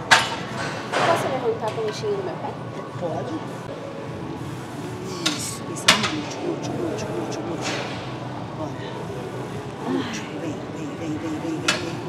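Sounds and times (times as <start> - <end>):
gym chatter: 0.0 - 12.0.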